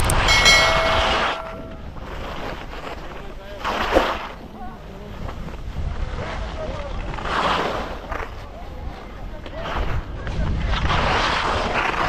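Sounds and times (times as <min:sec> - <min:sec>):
wind on microphone: 0:00.0 - 0:02.8, 0:04.4 - 0:12.0
skis scraping on snow: 0:02.1 - 0:12.0
people chattering: 0:08.3 - 0:10.7.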